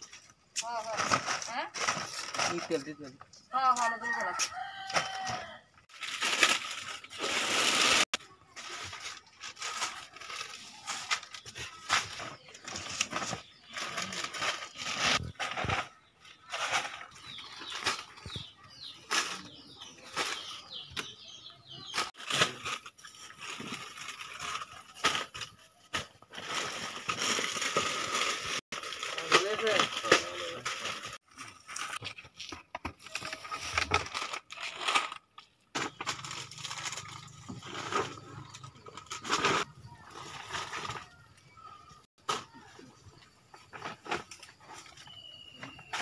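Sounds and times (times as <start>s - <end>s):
bags rustling and crinkling: 0.0s - 3.2s, 4.5s - 46.0s.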